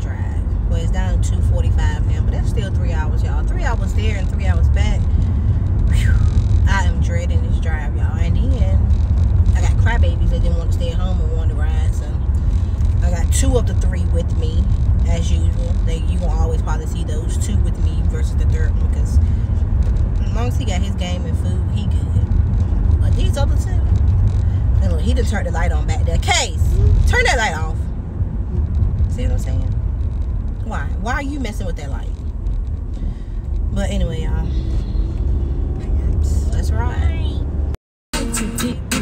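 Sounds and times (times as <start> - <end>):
woman talking: 0.0 - 5.1, 5.9 - 8.9, 9.6 - 12.3, 13.0 - 19.2, 20.2 - 22.3, 23.0 - 23.9, 24.8 - 27.8, 29.1 - 29.8, 30.6 - 32.2, 33.7 - 34.8, 35.8 - 37.4
car interior rumble: 0.0 - 39.0.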